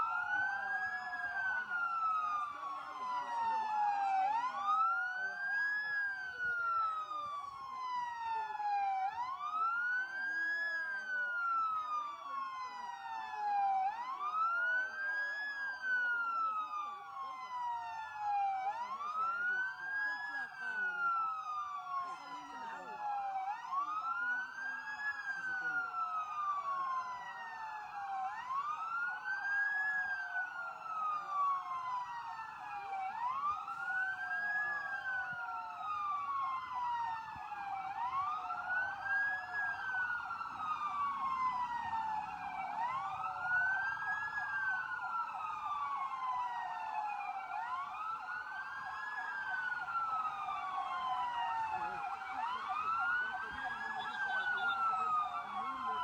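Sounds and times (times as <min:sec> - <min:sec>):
emergency vehicle siren wailing: 0:00.0 - 0:56.0.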